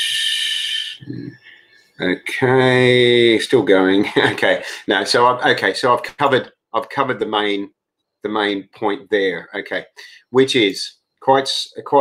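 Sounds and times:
man hissing breath through teeth: 0.0s - 1.1s.

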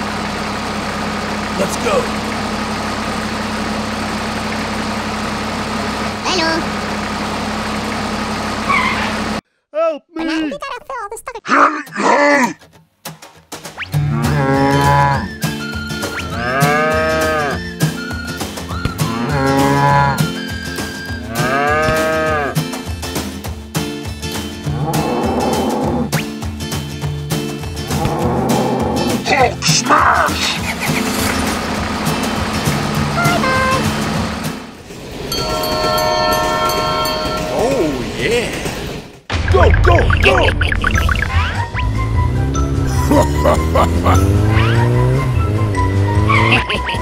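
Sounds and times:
tractor motor hum: 0.0s - 9.4s, 27.6s - 39.9s
background music: 13.1s - 34.8s, 40.0s - 47.0s
cattle mooing: 14.0s - 15.4s, 16.3s - 17.6s, 19.0s - 20.3s, 21.3s - 22.6s, 24.7s - 26.1s, 27.9s - 29.2s.

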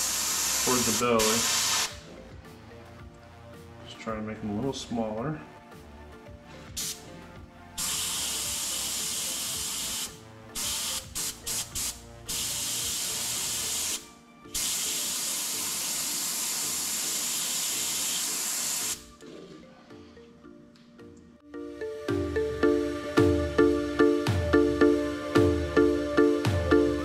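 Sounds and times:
airbrush spraying hiss: 0.0s - 1.9s, 6.8s - 7.0s, 7.8s - 19.1s.

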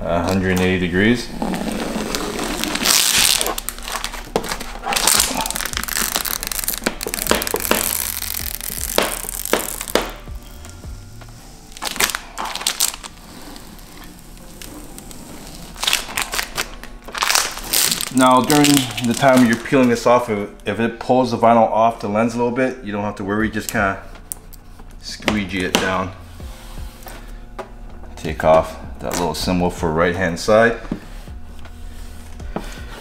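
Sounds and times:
plastic film peeling and crinkling: 1.4s - 10.8s, 11.6s - 20.2s.

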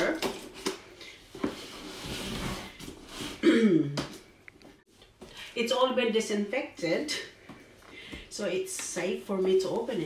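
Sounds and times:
person clearing throat: 3.4s - 4.1s.

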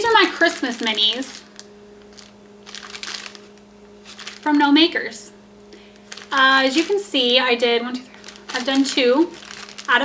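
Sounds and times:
plastic bags crinkling: 0.0s - 5.0s, 5.8s - 10.0s.

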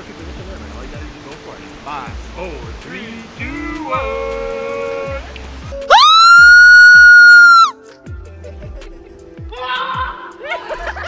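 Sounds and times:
background music with steady beat: 0.0s - 11.0s
person screaming high: 5.9s - 7.7s, 9.5s - 10.3s.

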